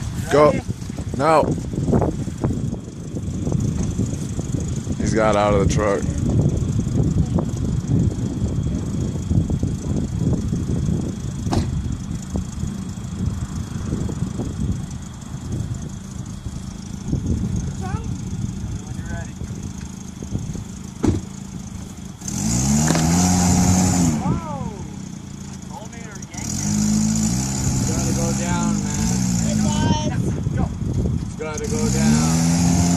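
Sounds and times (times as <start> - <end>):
low uneven engine rumble: 0.0 - 32.9
car engine revving hard: 22.1 - 25.0, 25.7 - 30.1, 31.4 - 32.9.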